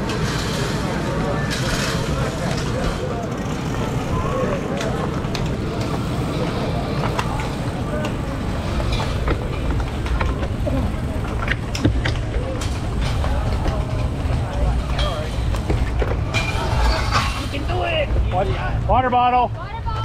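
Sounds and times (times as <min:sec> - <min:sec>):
background voices talking: 0:00.0 - 0:20.0
sharp clicks from bikes: 0:00.0 - 0:20.0
wind and road noise rumble: 0:00.0 - 0:20.0.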